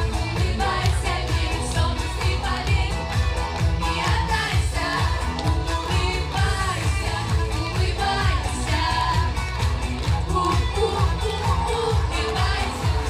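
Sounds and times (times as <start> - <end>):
backing track with bass beat: 0.0 - 13.0
girls singing a pop song: 0.0 - 13.0.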